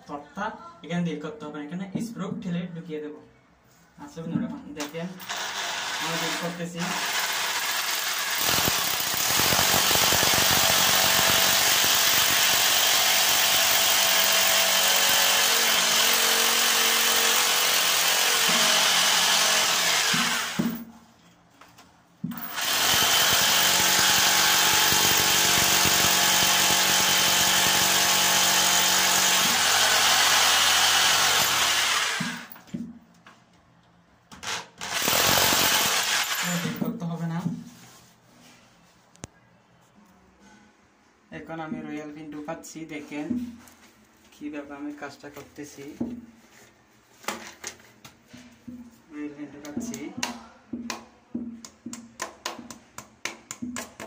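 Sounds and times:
electric drill whining: 5.2s - 20.8s, 22.3s - 32.5s, 34.8s - 36.8s.

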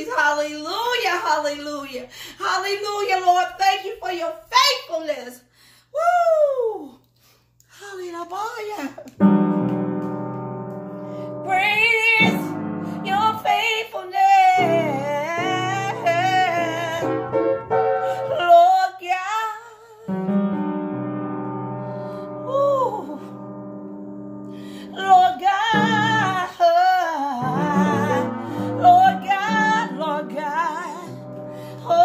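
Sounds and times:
piano chords: 9.2s - 18.8s, 20.1s - 32.0s
woman singing: 11.4s - 17.3s, 18.2s - 20.2s, 22.4s - 23.4s, 24.9s - 32.0s.

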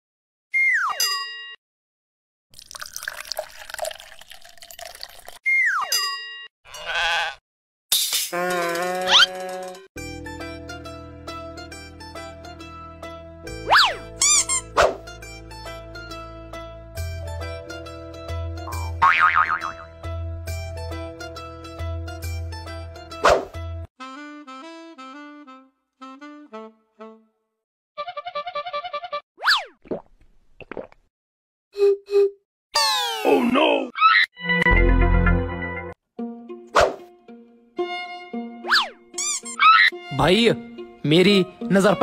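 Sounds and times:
comic plucked string music: 10.0s - 23.9s, 34.4s - 42.0s
short sharp swish: 14.8s - 15.0s, 23.2s - 23.6s, 36.7s - 37.1s
slide whistle: 31.8s - 32.4s.

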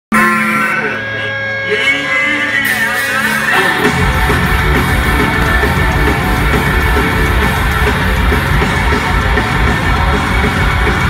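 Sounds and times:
punk rock band playing loudly: 0.1s - 11.0s.

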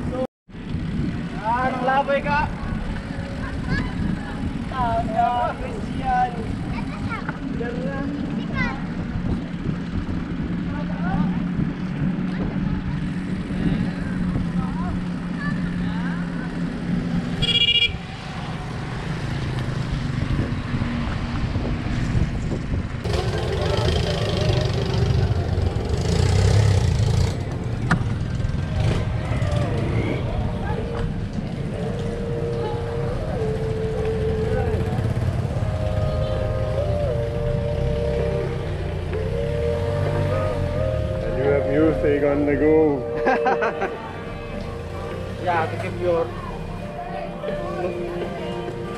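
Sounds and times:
bicycle road noise: 0.0s - 48.9s
motor traffic passing: 0.0s - 48.9s
wind on microphone: 2.5s - 15.1s, 18.4s - 23.7s.

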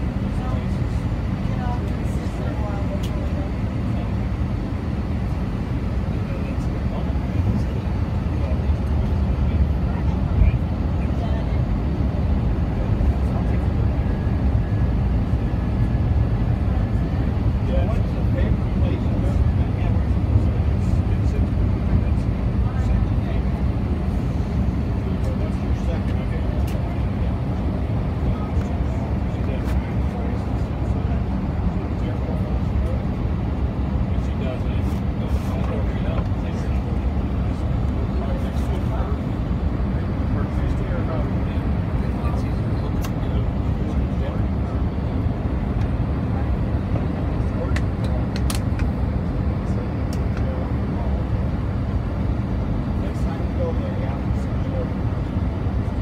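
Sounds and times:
jet engine cabin rumble: 0.0s - 56.0s.

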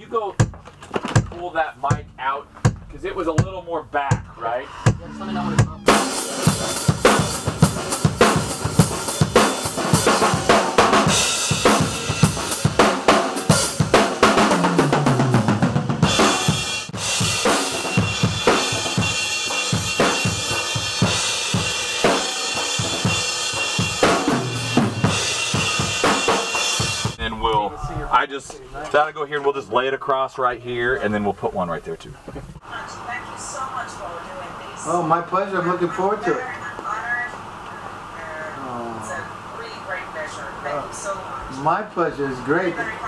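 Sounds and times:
drum kit rock groove: 0.0s - 28.8s
cymbals ringing: 4.3s - 13.7s, 16.2s - 27.2s.

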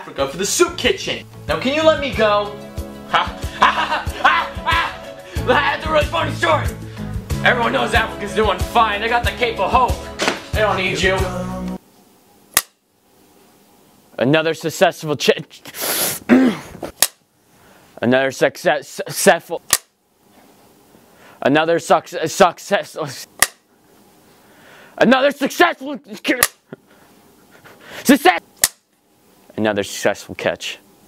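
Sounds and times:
young man speaking: 0.0s - 11.4s, 28.0s - 28.4s
sharp click: 10.2s - 10.4s, 12.6s - 12.8s, 16.9s - 17.2s, 19.7s - 20.0s, 23.4s - 23.6s, 26.4s - 26.6s, 28.6s - 29.0s.

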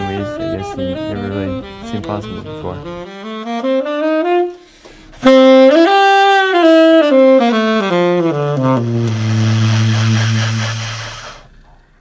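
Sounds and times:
saxophone low breathy note: 7.8s - 11.8s.

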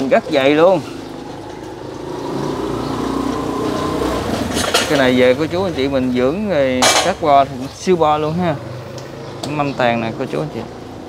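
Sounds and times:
vehicle engine passing by: 0.0s - 11.0s.

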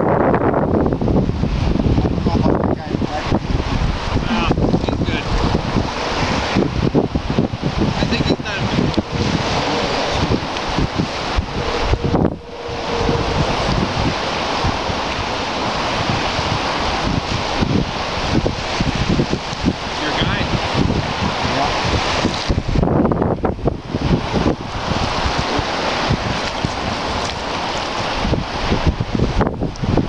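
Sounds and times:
wind buffeting microphone: 0.0s - 30.0s
lake water washing: 0.8s - 30.0s.

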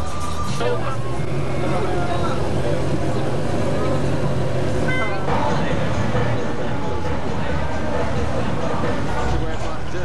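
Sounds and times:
car engines rumbling: 0.0s - 10.0s
people's voices: 0.0s - 10.0s.

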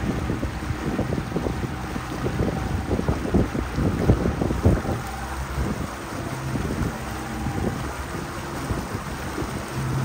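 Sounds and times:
boat engine humming: 0.0s - 10.0s
wind buffeting microphone: 0.0s - 10.0s.

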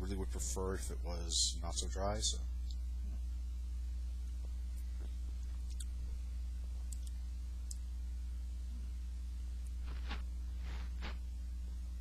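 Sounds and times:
low electrical hum: 0.0s - 12.0s
faint mouth clicks: 5.6s - 6.0s.

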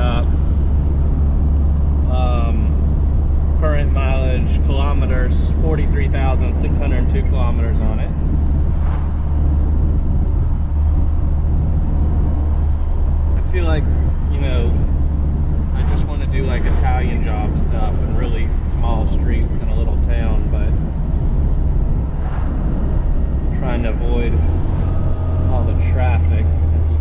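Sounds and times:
engine and road noise drone: 0.0s - 27.0s
person talking: 2.1s - 2.8s, 3.6s - 8.2s, 13.4s - 14.9s, 15.8s - 20.8s, 23.5s - 24.5s, 25.3s - 27.0s.

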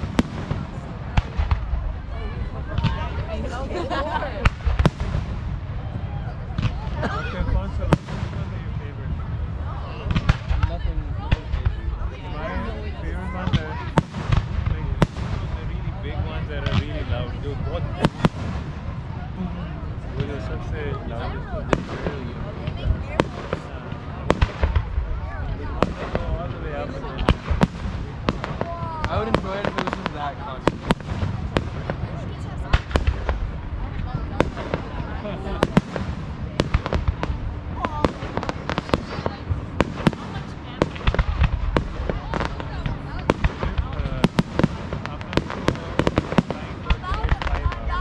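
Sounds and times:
fireworks bursting: 0.0s - 12.0s, 13.4s - 48.0s.

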